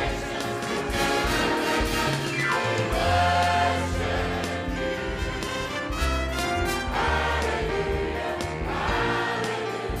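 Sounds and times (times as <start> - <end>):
choir singing gospel song: 0.0 - 10.0
live band with drums piano bass: 0.0 - 10.0.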